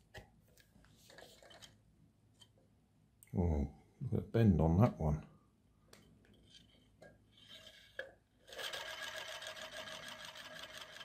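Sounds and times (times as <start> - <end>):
skewer scraping in plastic tube: 6.4 - 8.1.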